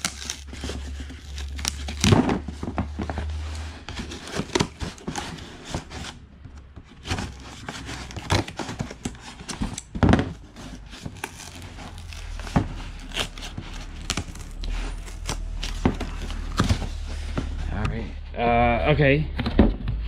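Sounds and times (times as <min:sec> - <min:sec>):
cardboard tearing and crinkling: 0:00.0 - 0:06.2, 0:07.0 - 0:17.7
scissors cutting cardboard: 0:00.0 - 0:17.6.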